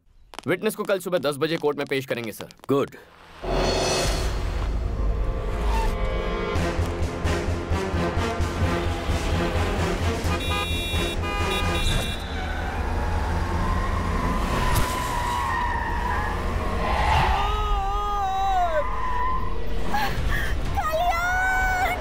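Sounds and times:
car engines rumbling: 8.3 - 22.0
siren wailing: 12.3 - 19.6.

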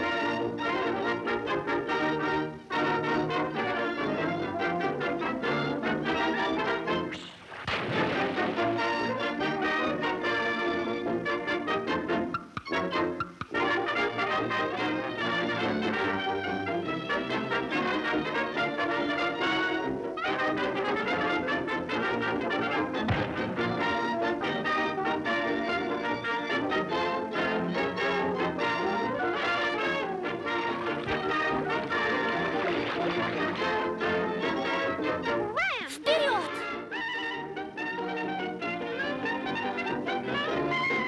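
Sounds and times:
brass-led cartoon orchestra music: 0.0 - 7.1, 13.6 - 35.4, 36.5 - 41.0.

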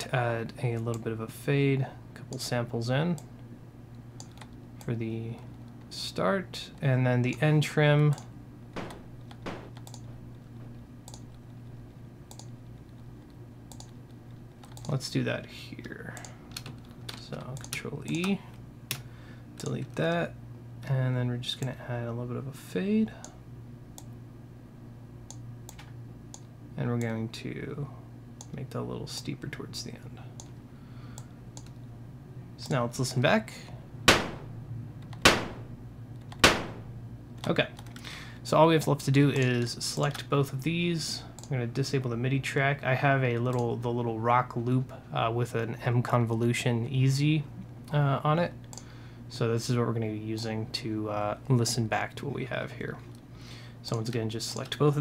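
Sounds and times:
low steady hum: 0.0 - 55.0
computer mouse clicks: 4.2 - 4.6, 9.2 - 10.1, 11.0 - 11.4, 12.3 - 13.0, 13.7 - 14.0, 14.6 - 15.0, 31.2 - 31.8.

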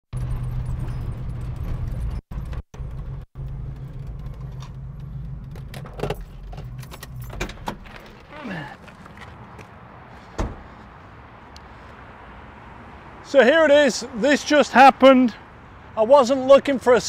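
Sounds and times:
sharp clicks and rattles: 0.2 - 8.3
car engine running low: 0.2 - 9.3.

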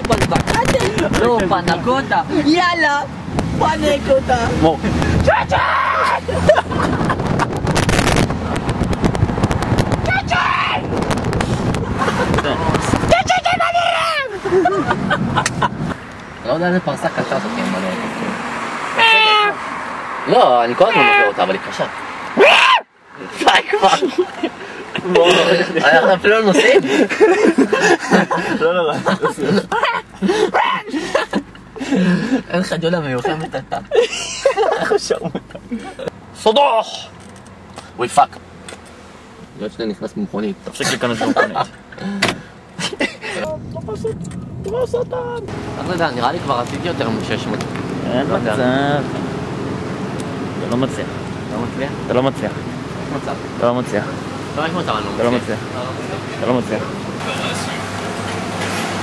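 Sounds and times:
voices calling out and chattering: 0.0 - 8.7, 10.0 - 59.0
road traffic rush: 0.0 - 59.0.

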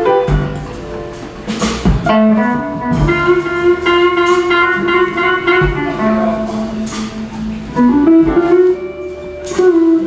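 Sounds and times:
band playing: 0.0 - 10.0
electric guitar blues lead: 0.0 - 10.0.

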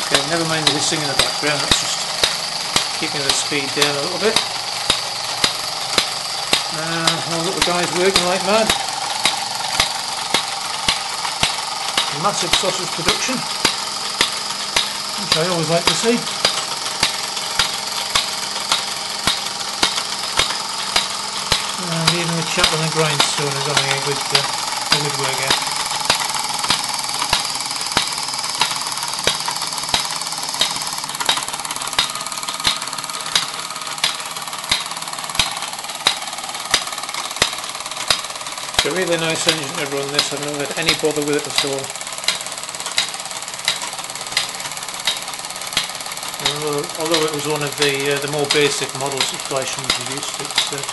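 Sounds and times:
model steam engine running: 0.0 - 50.9
sharp repeating click: 0.0 - 50.9.

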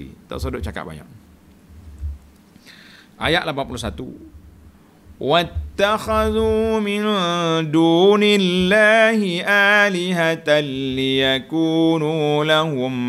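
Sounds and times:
man chanting melodically: 5.2 - 13.0.

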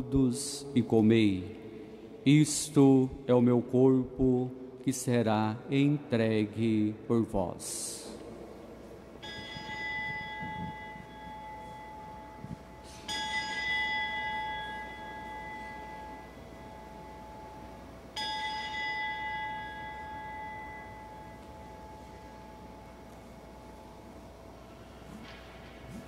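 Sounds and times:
bell ringing: 9.2 - 24.0.

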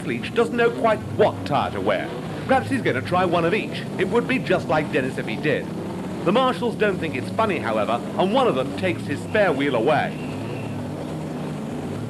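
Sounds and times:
racing car engines idling: 0.0 - 12.0.

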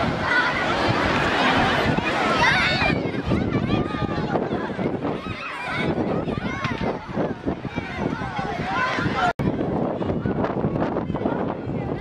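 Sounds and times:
children shouting and squealing: 0.0 - 12.0.

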